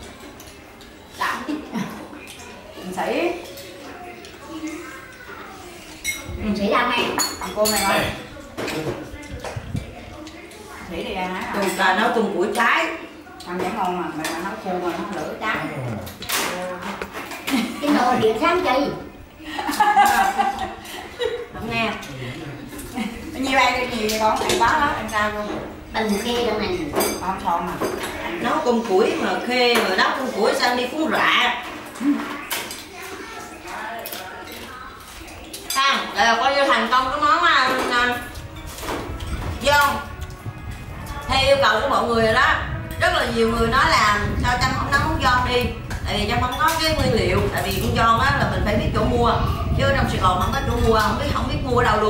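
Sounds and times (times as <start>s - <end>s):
faint voices: 0.0s - 52.0s
utensils clinking against bowls: 1.9s - 18.5s, 19.6s - 43.2s, 45.0s - 48.3s, 50.0s - 52.0s.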